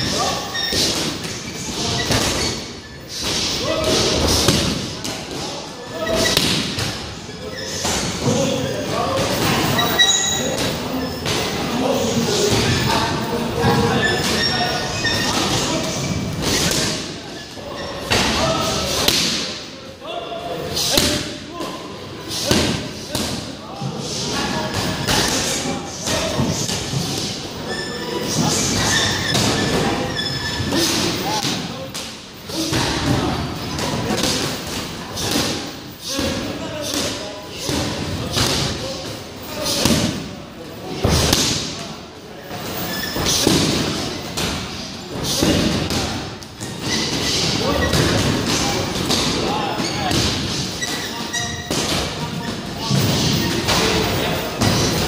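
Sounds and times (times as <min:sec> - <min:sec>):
voices: 0:00.0 - 0:55.0.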